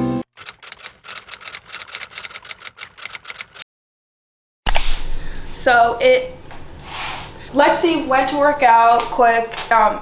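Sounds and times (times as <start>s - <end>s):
rapid typing key clicks: 0.3s - 3.6s.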